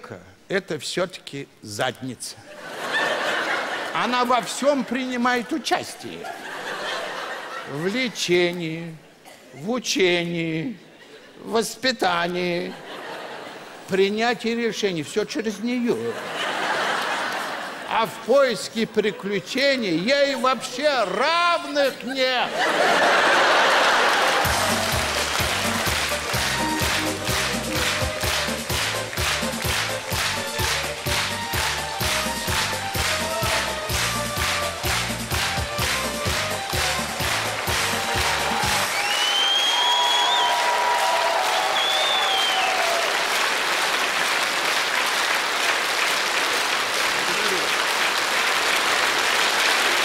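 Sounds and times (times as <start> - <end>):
upbeat stage music: 12.0 - 50.0
audience applauding: 16.2 - 17.9, 22.6 - 50.0.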